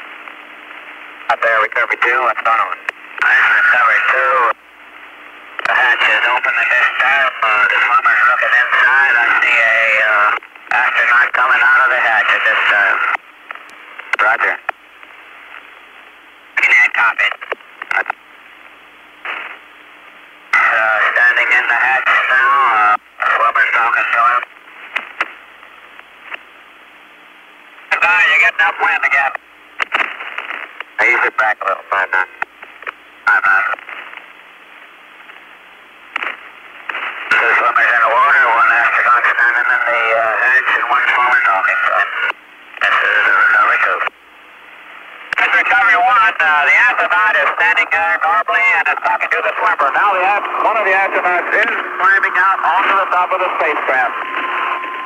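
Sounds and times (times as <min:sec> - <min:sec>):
burst of radio static: 0:00.0 - 0:18.6, 0:19.2 - 0:26.4, 0:27.8 - 0:55.0
low steady hum: 0:00.0 - 0:55.0
radio channel hiss: 0:00.0 - 0:55.0.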